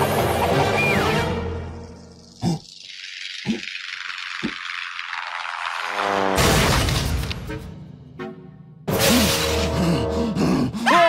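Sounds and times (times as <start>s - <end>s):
hissing rattle: 1.8s - 6.4s.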